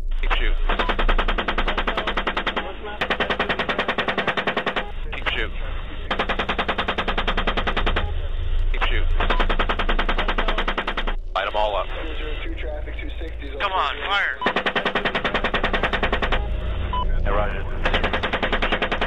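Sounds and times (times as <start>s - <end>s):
radio voice: 0.1s - 0.9s, 1.5s - 6.3s, 7.6s - 10.8s, 11.4s - 19.0s
automatic gunfire bursts: 0.7s - 5.2s, 6.1s - 8.2s, 9.1s - 11.2s, 14.4s - 16.6s, 17.8s - 19.0s.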